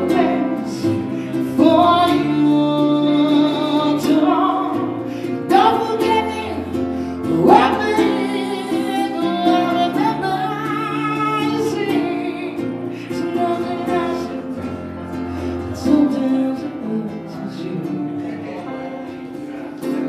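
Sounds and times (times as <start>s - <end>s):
woman singing a slow ballad: 0.0s - 18.0s
electric piano: 0.0s - 20.0s
strummed ukulele: 0.0s - 20.0s.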